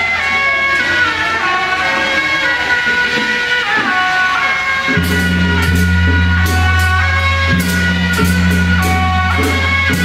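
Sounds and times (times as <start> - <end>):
shawm playing sustained melody: 0.0 - 10.0.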